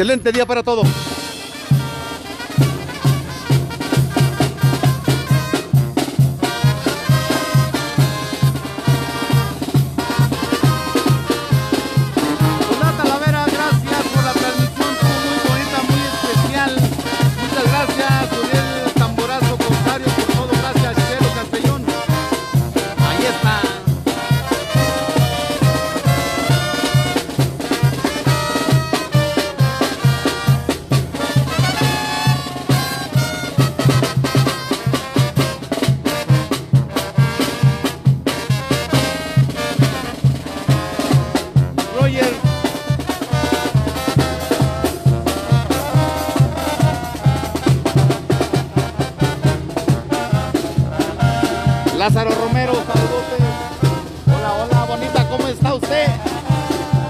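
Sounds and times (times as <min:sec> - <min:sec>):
bass drum beat: 0:00.0 - 0:57.0
brass band melody: 0:00.0 - 0:57.0.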